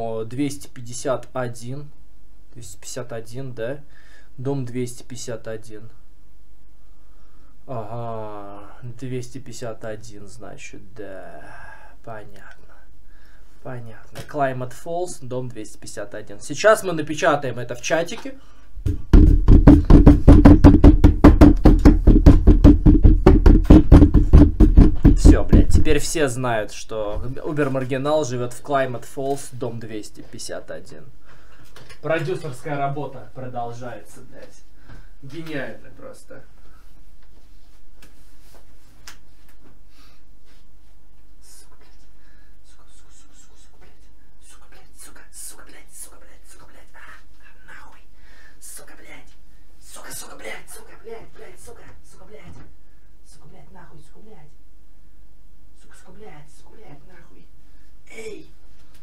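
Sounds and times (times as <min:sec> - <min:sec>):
low electrical hum: 0:00.0 - 0:59.0
person whispering: 0:11.0 - 0:12.9, 0:41.4 - 0:52.6, 0:53.2 - 0:54.6, 0:55.8 - 0:58.5.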